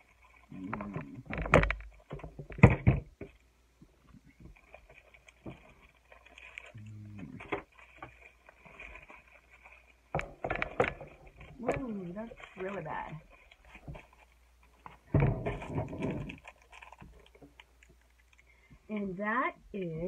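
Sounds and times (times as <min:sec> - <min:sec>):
sharp plastic crackles: 0:00.0 - 0:18.7
plastic package crinkling: 0:04.0 - 0:18.5.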